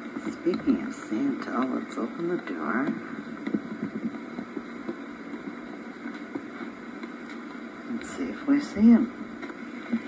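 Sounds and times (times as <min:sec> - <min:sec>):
faint clicks: 0:00.0 - 0:08.2, 0:09.2 - 0:10.0
tape hiss: 0:00.0 - 0:10.0.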